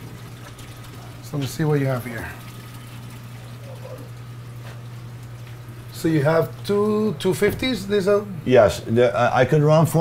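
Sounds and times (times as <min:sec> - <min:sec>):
circulating water washing: 0:00.0 - 0:08.8
aquarium equipment hum: 0:00.0 - 0:10.0.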